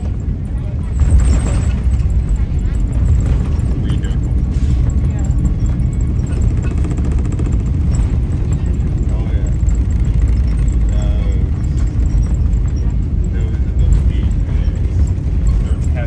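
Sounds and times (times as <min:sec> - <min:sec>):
aircraft engine and wheel rumble: 0:00.0 - 0:16.0.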